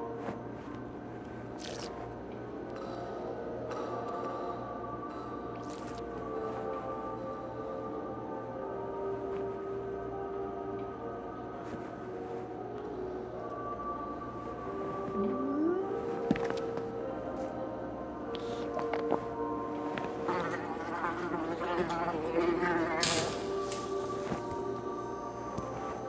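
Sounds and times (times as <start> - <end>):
film music sustained tones: 0.0 - 26.0.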